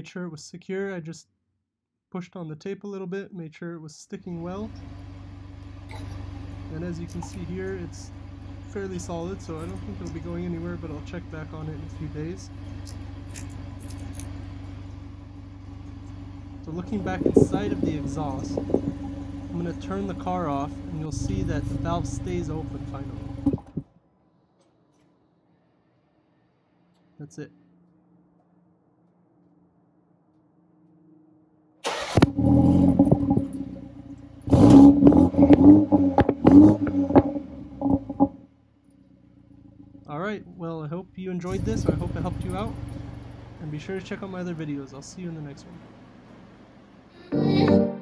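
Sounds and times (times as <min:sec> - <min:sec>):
car engine idling: 0:04.3 - 0:23.9, 0:31.8 - 0:47.2.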